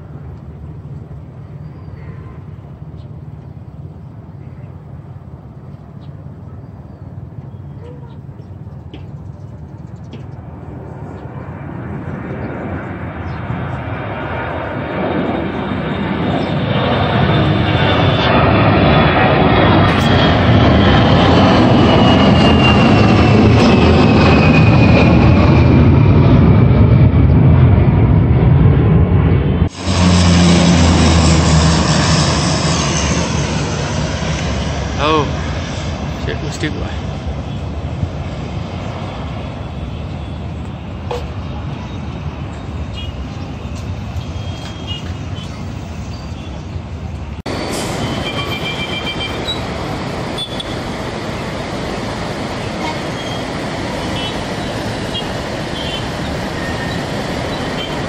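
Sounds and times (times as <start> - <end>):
jet airliner taking off: 0.0 - 58.0
turboprop airliner propeller drone: 0.0 - 58.0
high fan whine: 39.6 - 58.0.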